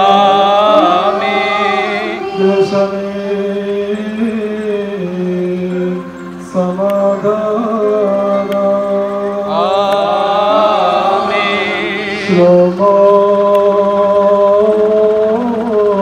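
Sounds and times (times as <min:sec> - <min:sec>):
priest chanting through loudspeaker: 0:00.0 - 0:15.6.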